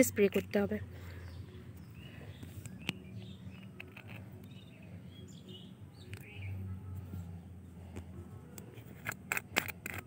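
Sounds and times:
low steady hum: 0:00.0 - 0:10.0
sharp handling clicks: 0:08.6 - 0:10.0.

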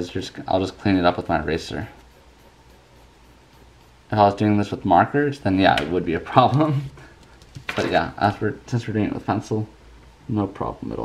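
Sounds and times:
low background hum: 0:00.0 - 0:11.0
pencil scratching on paper: 0:00.8 - 0:04.7.

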